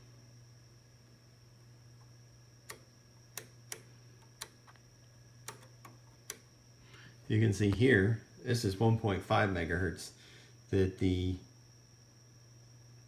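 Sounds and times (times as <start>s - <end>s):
faint high whine: 0.0s - 13.0s
steady low hum: 0.0s - 13.0s
control knob clicking: 5.4s - 6.4s.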